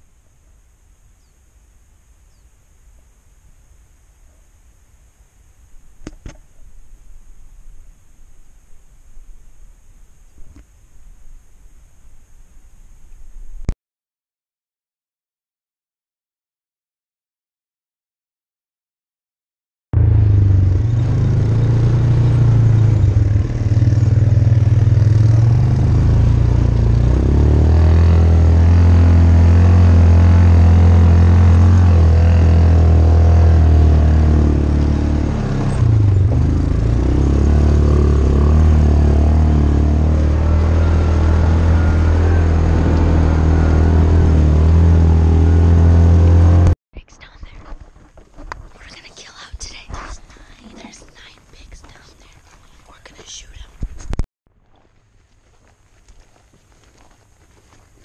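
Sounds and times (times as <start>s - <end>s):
utility vehicle engine under load: 20.0s - 46.8s
quiet whispering: 47.0s - 47.8s, 48.7s - 53.9s.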